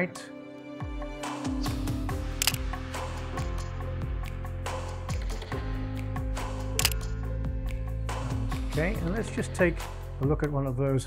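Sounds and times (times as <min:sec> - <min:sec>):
background music: 0:00.0 - 0:11.0
camera shutter firing: 0:02.4 - 0:02.7, 0:06.8 - 0:07.1.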